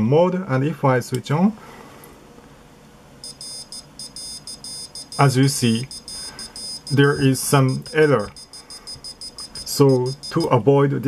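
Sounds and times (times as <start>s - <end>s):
buzzer beeping morse code: 3.2s - 10.6s.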